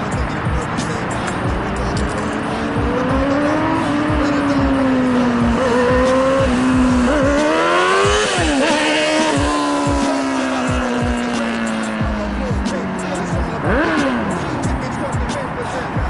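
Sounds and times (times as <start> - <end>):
motorcycle engine revving: 0.0 - 16.0.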